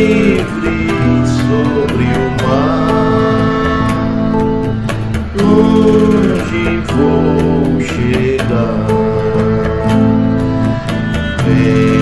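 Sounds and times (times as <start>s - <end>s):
electric guitar chords and melody: 0.0s - 12.0s
light percussion beat: 0.0s - 12.0s.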